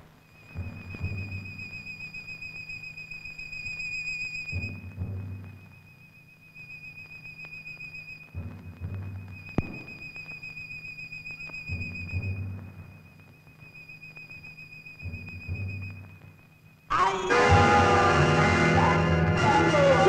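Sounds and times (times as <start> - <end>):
low rhythmic pulsing: 0.0 - 20.0
high whistling trill: 0.2 - 20.0.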